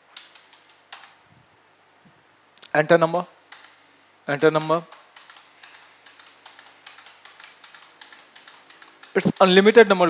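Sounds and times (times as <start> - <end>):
computer keyboard keys tapping: 0.1 - 1.2, 3.5 - 3.8, 4.6 - 10.0.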